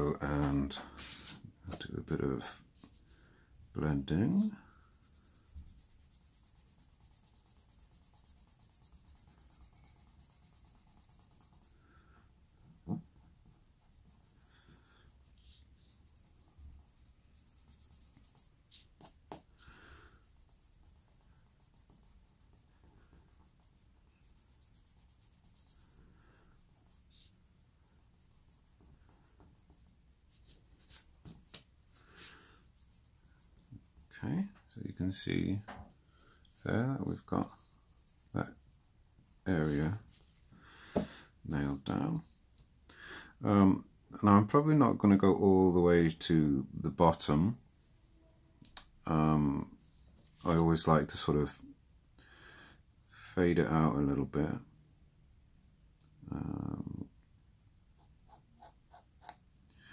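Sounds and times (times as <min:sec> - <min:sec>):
pencil rubbing on paper: 0:03.6 - 0:34.3, 0:37.2 - 0:40.2, 0:58.0 - 0:59.4.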